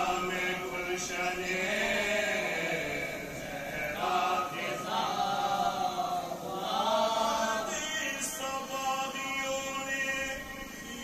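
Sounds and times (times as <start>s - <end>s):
men chanting in unison: 0.0s - 10.4s.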